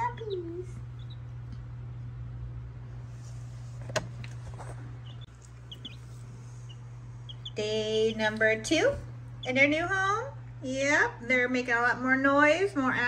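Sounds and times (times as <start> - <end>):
baby chicks peeping: 0.0 - 1.6, 4.2 - 10.0
low hum: 0.0 - 13.0.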